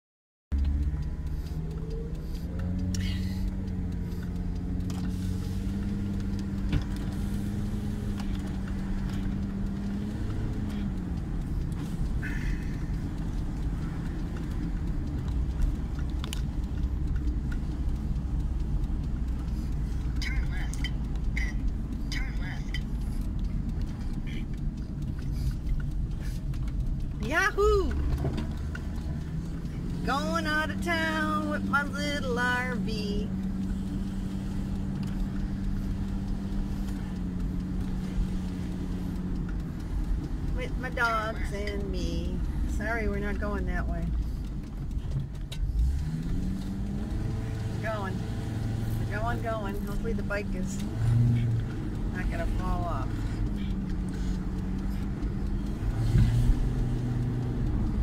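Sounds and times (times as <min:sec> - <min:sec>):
motorhome engine and road noise: 0:00.5 - 0:58.0.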